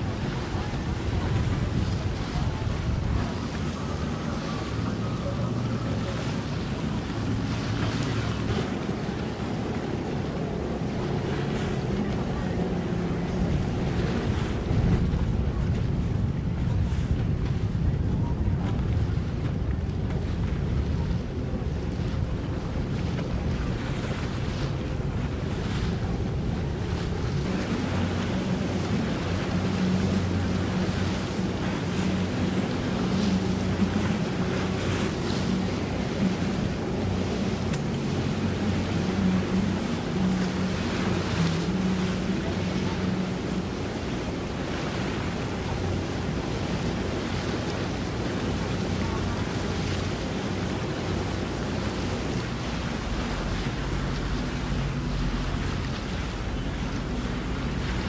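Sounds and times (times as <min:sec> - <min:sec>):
boat engines humming: 0:00.0 - 0:58.0
wind buffeting microphone: 0:00.0 - 0:58.0.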